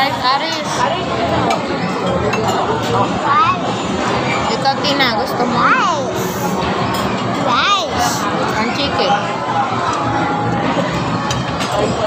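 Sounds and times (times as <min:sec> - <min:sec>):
diners chattering: 0:00.0 - 0:12.0
tableware and glasses clinking: 0:00.4 - 0:05.3, 0:06.3 - 0:12.0.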